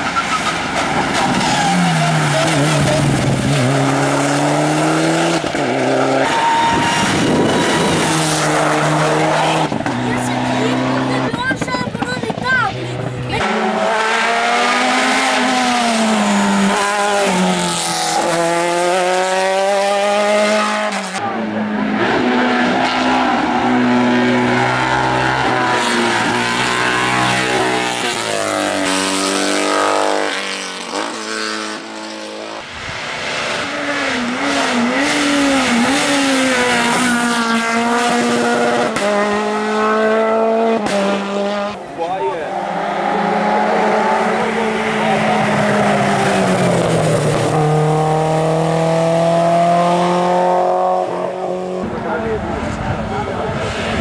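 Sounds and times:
racing car engines at full throttle: 0.0 - 54.0.

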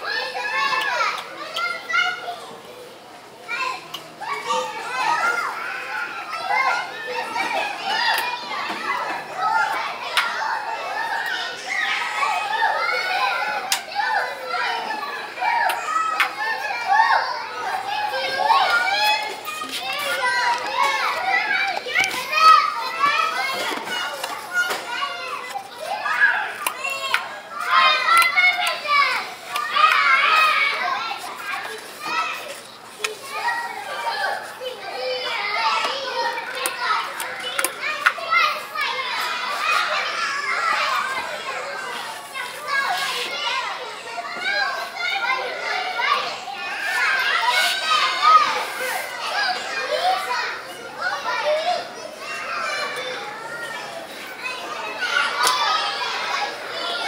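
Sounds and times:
children shouting and chattering: 0.0 - 57.0.

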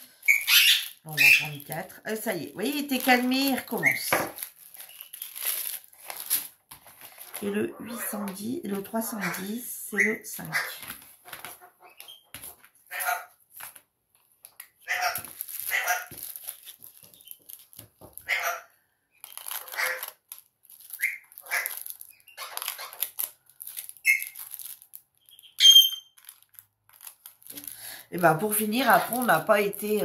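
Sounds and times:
plastic bags crinkling: 0.0 - 9.0, 13.5 - 18.3, 19.2 - 30.0.

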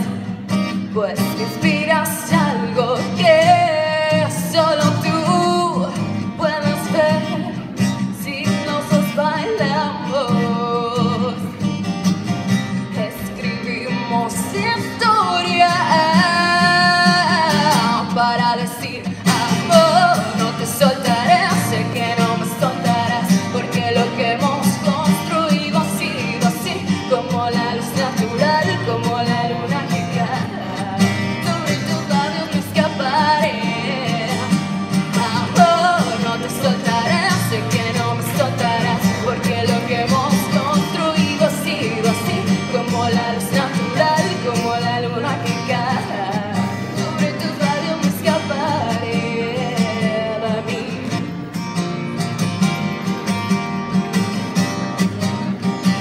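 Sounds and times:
woman singing: 0.0 - 11.8, 12.8 - 51.3
strummed acoustic guitar: 0.0 - 56.0.

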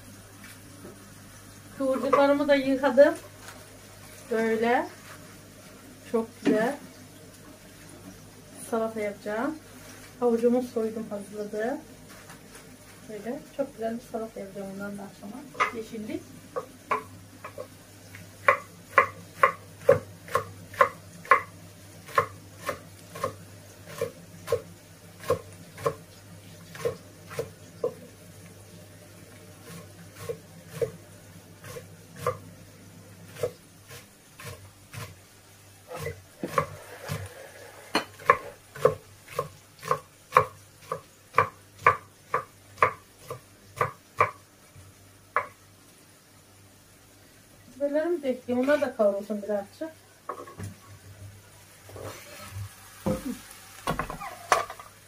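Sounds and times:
knife chopping on wooden board: 15.6 - 15.8, 16.6 - 17.7, 18.4 - 21.5, 22.1 - 24.6, 35.9 - 37.3, 37.9 - 44.4.

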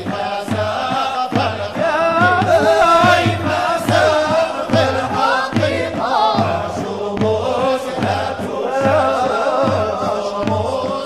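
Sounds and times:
vocal ensemble chanting: 0.0 - 11.0.

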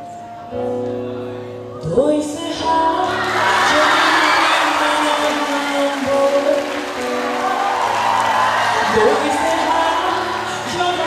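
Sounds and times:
live pop-rock band with vocals: 1.7 - 11.0.

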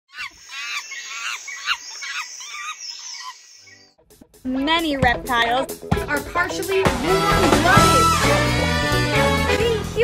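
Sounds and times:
birds warbling calls: 0.1 - 4.0.

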